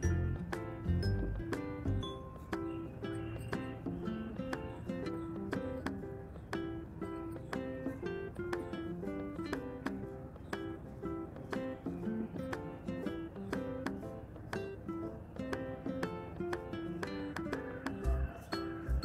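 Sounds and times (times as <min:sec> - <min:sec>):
plucked string music: 0:00.0 - 0:19.0.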